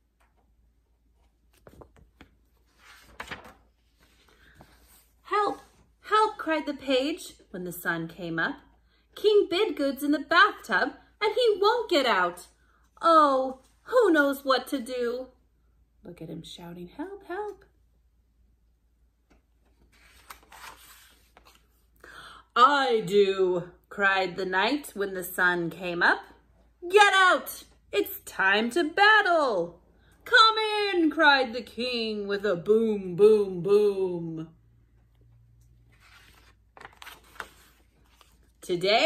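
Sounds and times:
paper page turning: 1.2 - 5.2, 19.6 - 21.9, 35.9 - 38.6.

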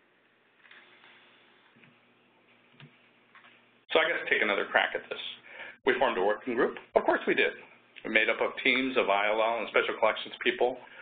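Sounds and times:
person speaking: 3.9 - 10.9.

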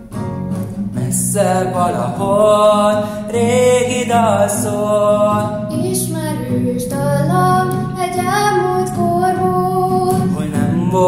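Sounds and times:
acoustic guitar: 0.0 - 11.0
young woman singing: 3.4 - 11.0.

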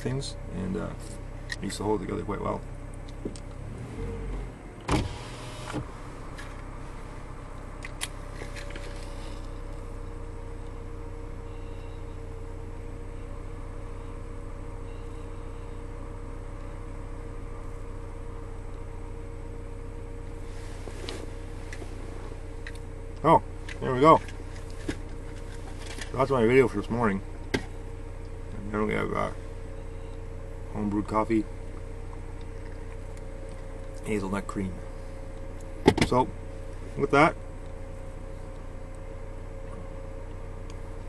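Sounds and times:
truck engine idling: 0.0 - 41.0.

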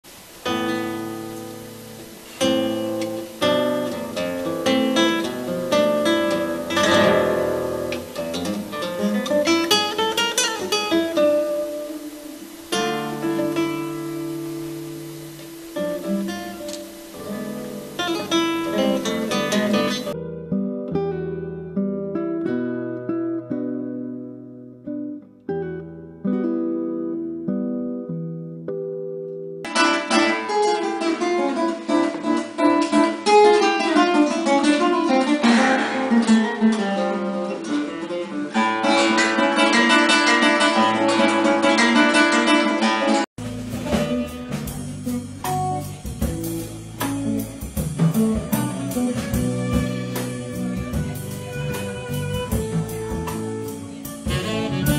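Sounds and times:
fingerstyle classical guitar: 0.1 - 54.9
band playing: 0.6 - 20.2, 43.4 - 54.9.

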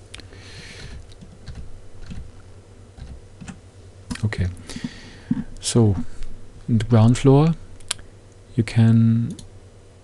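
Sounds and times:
keyboard and mouse clicks: 0.8 - 2.3, 3.0 - 4.3.

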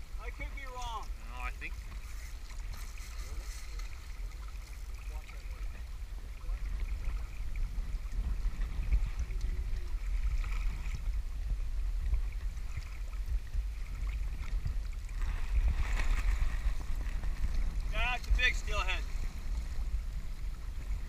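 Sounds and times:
river current rushing around legs: 0.0 - 21.0
wind rumbling on microphone: 0.0 - 21.0.

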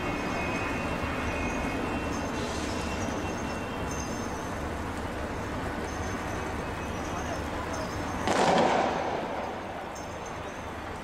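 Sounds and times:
sudden bang: 8.3 - 9.8.

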